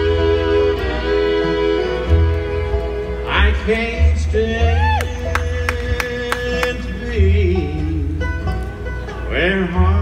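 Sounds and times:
acoustic guitar: 0.0s - 10.0s
banjo: 0.0s - 10.0s
fiddle melody: 0.0s - 10.0s
upright bass: 0.0s - 10.0s.

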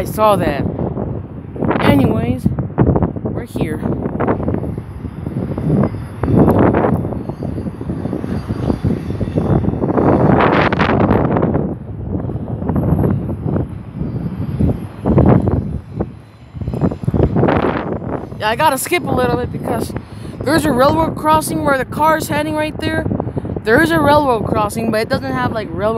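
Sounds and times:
freight train wheels rumbling on rail: 3.9s - 24.3s.

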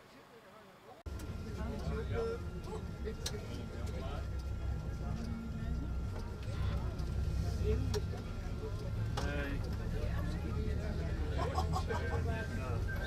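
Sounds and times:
people talking indistinctly: 0.4s - 13.0s
vehicle engine and tyres rumbling: 1.1s - 13.0s.

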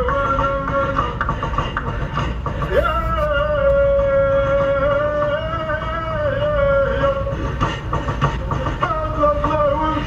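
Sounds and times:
road noise inside car: 0.0s - 10.0s
devotional chanting: 2.6s - 7.5s.

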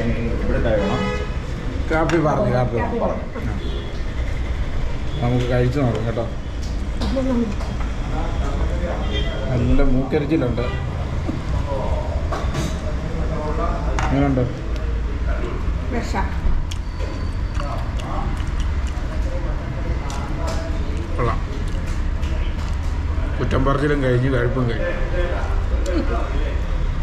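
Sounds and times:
people talking: 0.0s - 1.2s, 7.0s - 10.8s, 11.6s - 16.4s, 19.0s - 26.7s.

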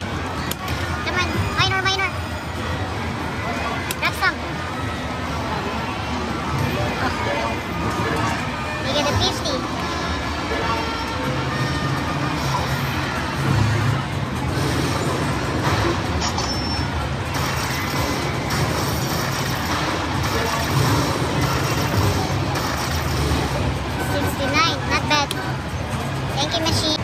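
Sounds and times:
slot machine win sounds: 6.5s - 26.4s
slot machine music and jingles: 6.5s - 27.0s.

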